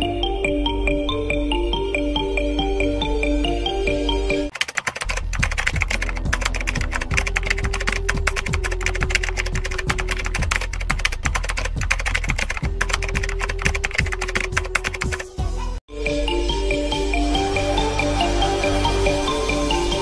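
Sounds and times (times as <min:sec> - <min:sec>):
background music: 0:00.0 - 0:20.0
rapid keyboard typing: 0:04.5 - 0:15.3.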